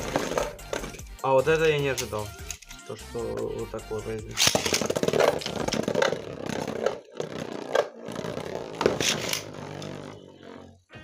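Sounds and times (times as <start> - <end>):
spinning top scraping plastic: 4.3 - 10.9.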